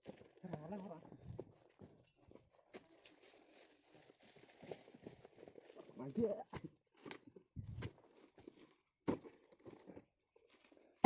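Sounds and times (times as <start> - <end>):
footsteps on dry ground: 0.0 - 8.8.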